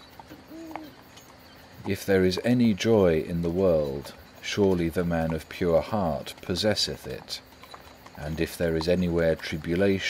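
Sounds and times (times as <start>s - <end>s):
low bird hoot: 0.0s - 1.8s
faint background hiss: 0.0s - 10.0s.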